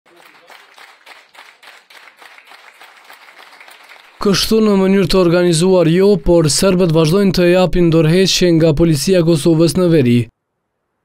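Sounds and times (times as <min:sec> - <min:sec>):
small group applauding: 0:00.0 - 0:05.0.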